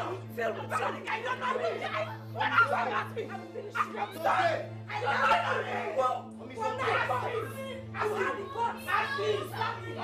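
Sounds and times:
people shouting in an argument: 0.0s - 10.0s.

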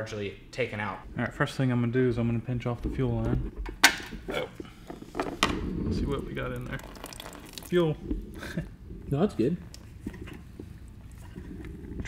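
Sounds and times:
fuel trickling and dripping: 6.1s - 8.6s.

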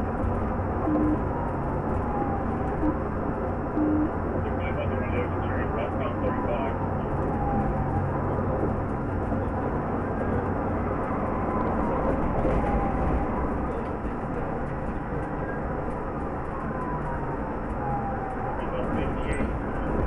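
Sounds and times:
car engine and tyre-road noise: 0.0s - 20.0s.

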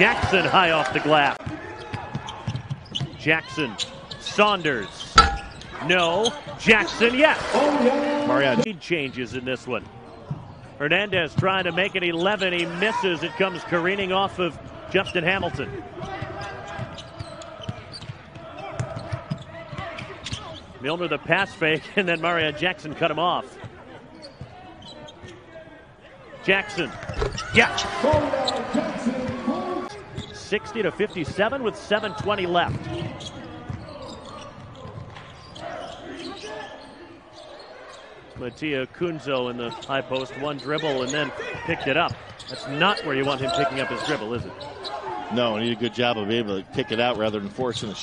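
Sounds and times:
basketball bouncing on hardwood: 5.2s - 5.7s.

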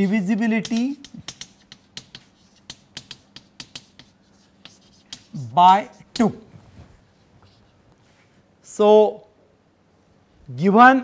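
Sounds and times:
chalk tapping and scratching: 0.4s - 6.4s.

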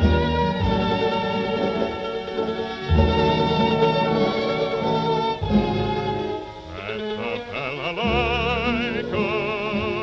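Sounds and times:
orchestral strings: 0.0s - 10.0s
violin melody: 0.0s - 10.0s
person singing with vibrato: 6.6s - 10.0s.

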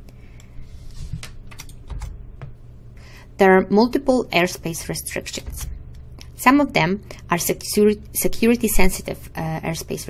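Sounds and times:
steady low hum: 0.0s - 10.0s
computer keys clicking: 1.2s - 2.2s.

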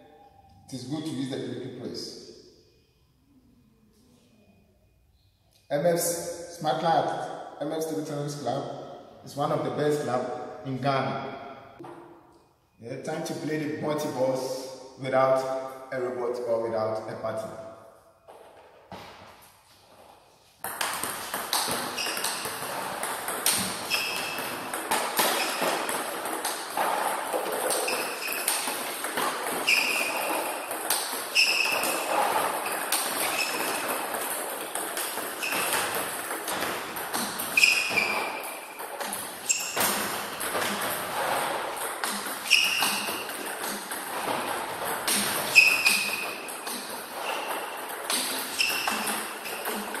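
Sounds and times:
table tennis ball clicks and pings: 20.6s - 50.0s.

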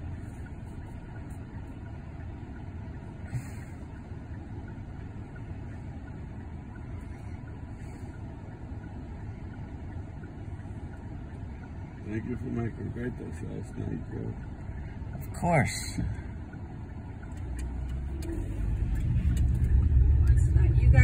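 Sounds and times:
car cabin rumble: 0.0s - 21.0s.

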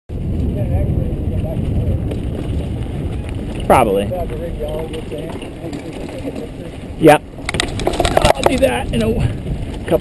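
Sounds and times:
bike rattling over rocky dirt: 0.1s - 10.0s
wind buffeting microphone: 0.1s - 10.0s.

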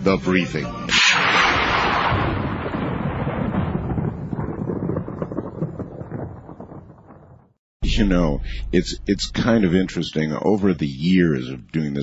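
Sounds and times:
boom with crackling rumble: 0.9s - 10.0s.

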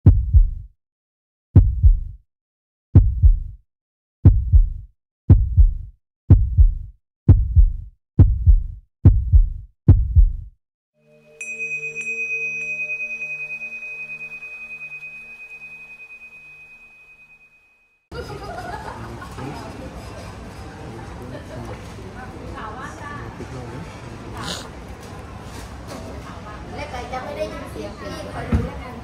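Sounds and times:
deep heartbeat-like booms: 0.0s - 0.7s, 1.6s - 2.2s, 3.0s - 3.6s, 4.2s - 10.6s
steady high tone: 11.0s - 18.0s.

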